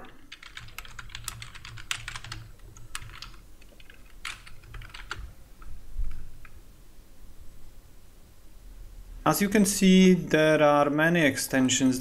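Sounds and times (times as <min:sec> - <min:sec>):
typing on a computer keyboard: 0:00.0 - 0:05.7.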